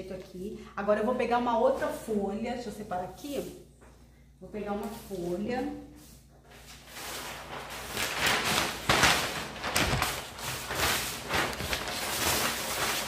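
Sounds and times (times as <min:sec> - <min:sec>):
paper rustling and crackling: 0:06.5 - 0:13.0.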